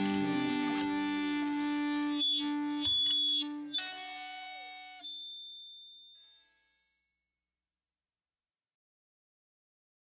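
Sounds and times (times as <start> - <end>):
electric guitar chord ringing: 0.0 - 6.3.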